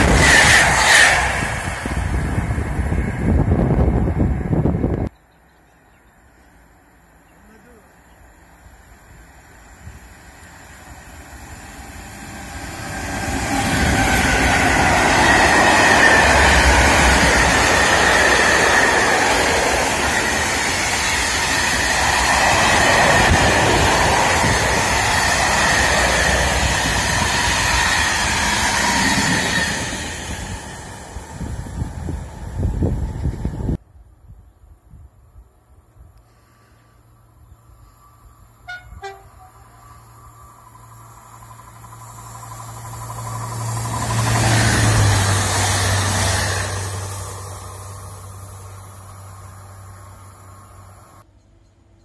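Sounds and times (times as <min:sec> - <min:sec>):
freight train passing at speed: 0:00.0 - 0:05.4, 0:06.2 - 0:34.1, 0:37.0 - 0:52.0.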